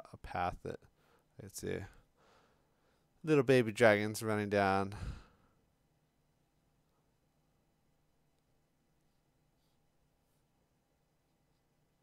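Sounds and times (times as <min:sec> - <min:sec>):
man's voice breathing out: 0:04.9 - 0:05.4.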